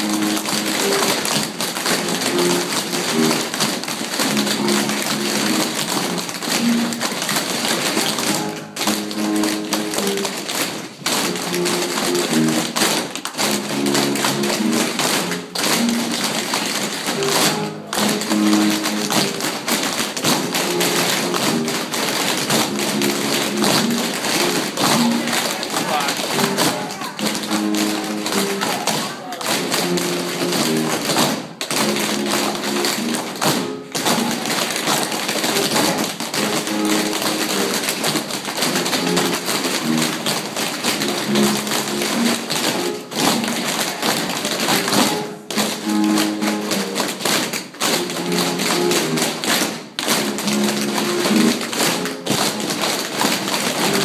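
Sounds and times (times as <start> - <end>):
recorded music: 0.0 - 54.0
tap shoes on wooden floor: 0.0 - 54.0.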